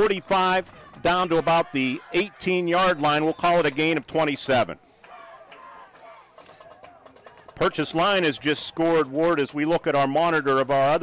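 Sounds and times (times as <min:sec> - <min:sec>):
distant crowd voices: 0:00.0 - 0:11.0.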